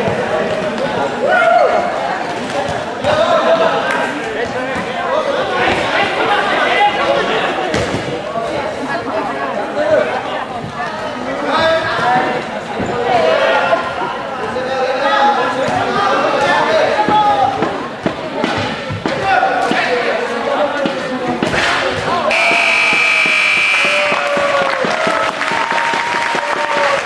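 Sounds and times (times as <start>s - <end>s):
players shouting: 22.3s - 27.0s.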